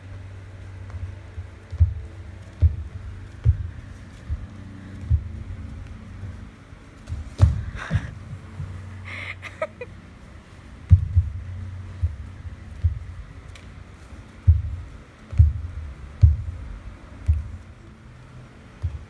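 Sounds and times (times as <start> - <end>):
low hum: 0.0 - 19.0
feet thumping on dance floor: 0.5 - 9.9, 10.5 - 17.8, 18.7 - 19.0.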